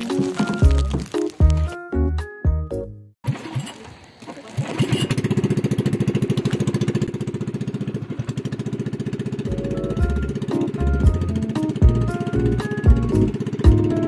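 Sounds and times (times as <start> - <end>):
background music with bass line: 0.0 - 3.1, 9.5 - 14.0
boat engine chugging: 3.3 - 14.0.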